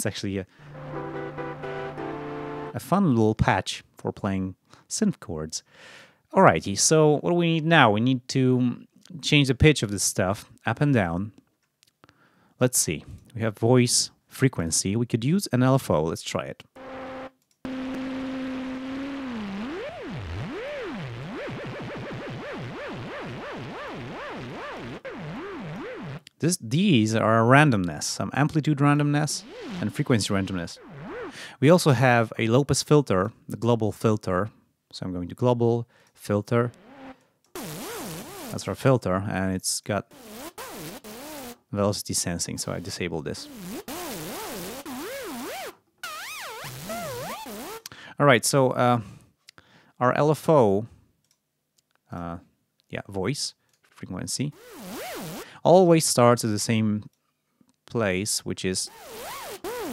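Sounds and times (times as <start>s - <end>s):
synth note with wobbling pitch: 0.6s - 2.9s, 16.8s - 26.2s, 29.3s - 31.3s.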